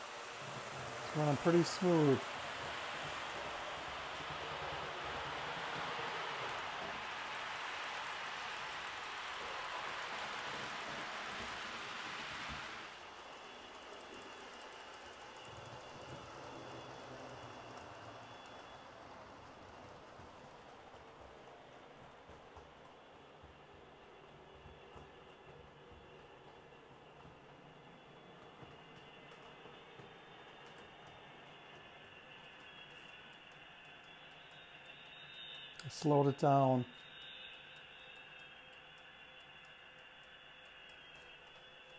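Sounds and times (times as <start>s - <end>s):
model train motor and gears: 0.0s - 41.9s
model train wheels on rails: 0.0s - 41.9s.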